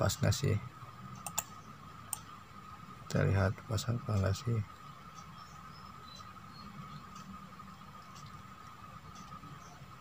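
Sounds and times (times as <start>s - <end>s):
faint electronic hum: 0.0s - 10.0s
computer mouse clicks: 1.2s - 2.3s.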